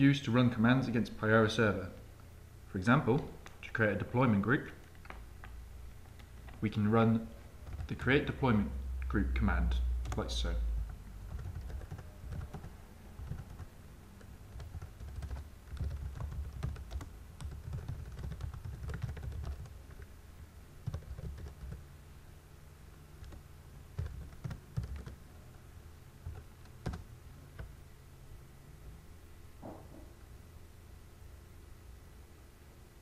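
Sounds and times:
typing on computer keyboard: 7.6 - 7.9, 11.3 - 20.1, 20.8 - 21.8, 24.0 - 25.2, 26.2 - 27.0.

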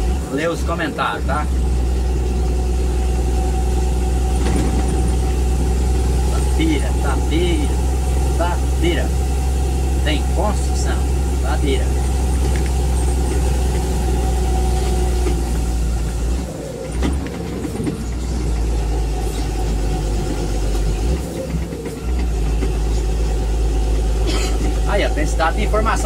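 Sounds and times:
vehicle engine and road rumble: 0.0 - 26.0.

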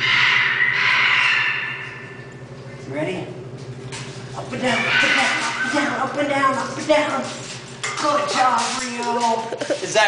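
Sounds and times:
macaw squawking: 0.0 - 2.2, 4.6 - 6.0.

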